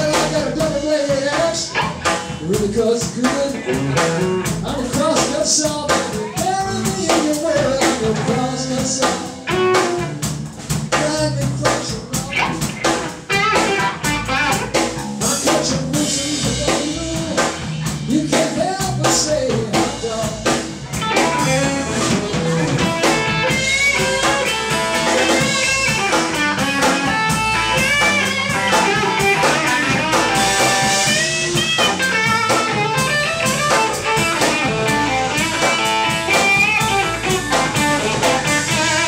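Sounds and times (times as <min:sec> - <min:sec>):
electric guitar lead: 0:00.0 - 0:10.7, 0:11.4 - 0:18.0, 0:19.3 - 0:39.0
bass guitar: 0:00.0 - 0:39.0
drum kit: 0:00.0 - 0:39.0.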